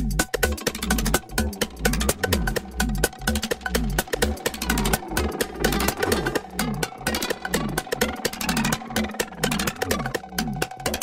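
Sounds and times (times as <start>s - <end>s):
gliding synth bass line: 0.0s - 11.0s
hi-hat ticks: 0.0s - 11.0s
kick drum beat: 0.0s - 11.0s.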